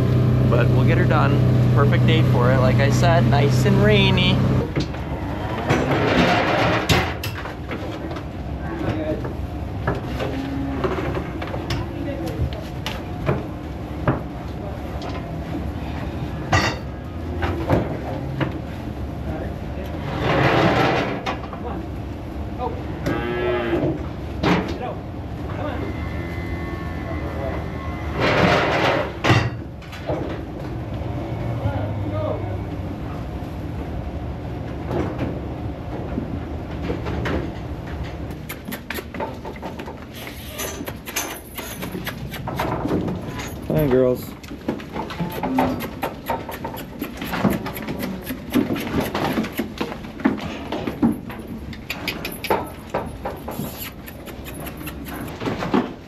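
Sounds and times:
cattle mooing: 10.2s - 11.1s, 22.9s - 23.9s, 25.5s - 28.4s.

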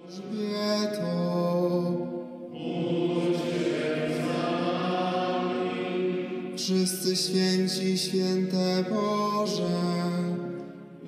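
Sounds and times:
voices chanting long notes: 0.0s - 7.4s.

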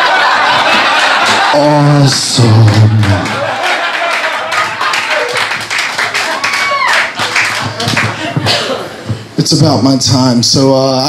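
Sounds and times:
audience laughing: 0.0s - 6.6s, 7.2s - 9.2s
audience clapping: 0.1s - 8.6s.

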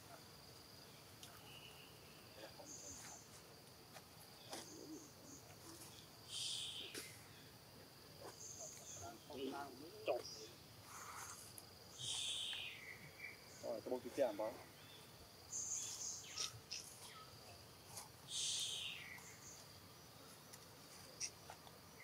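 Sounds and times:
high insect drone: 0.0s - 22.0s
bird calls: 4.4s - 7.6s, 8.2s - 17.3s, 18.3s - 20.4s.

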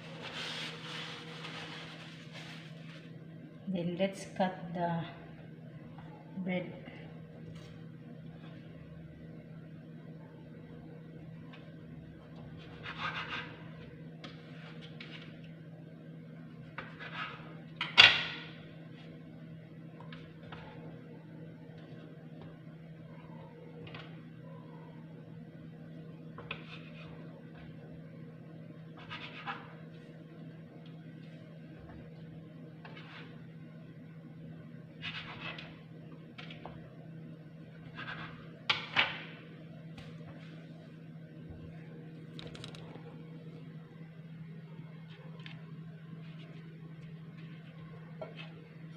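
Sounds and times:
knife cutting bread: 12.6s - 13.6s.

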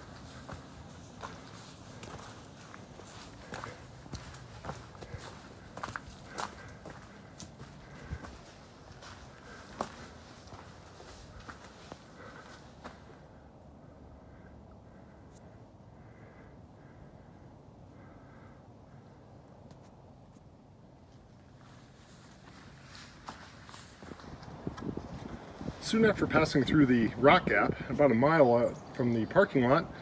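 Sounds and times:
footsteps on dry leaves: 0.0s - 13.0s, 21.6s - 25.8s.

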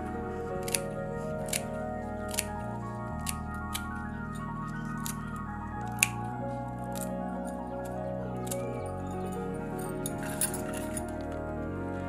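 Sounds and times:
background music: 0.0s - 12.0s
scissors snipping leaves: 0.5s - 4.0s, 4.7s - 6.2s.

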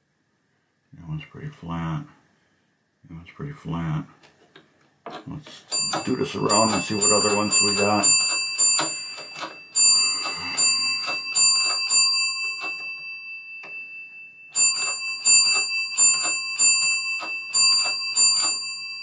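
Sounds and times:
thin metallic ringing: 5.7s - 19.0s.

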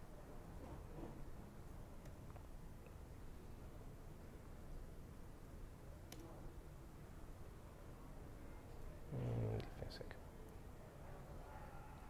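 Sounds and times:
man murmuring: 9.1s - 10.1s.

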